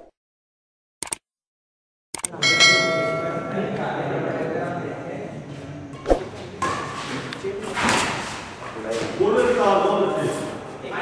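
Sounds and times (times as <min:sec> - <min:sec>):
bell chime ringing: 0:02.4 - 0:03.8
brief swish: 0:06.0 - 0:06.2.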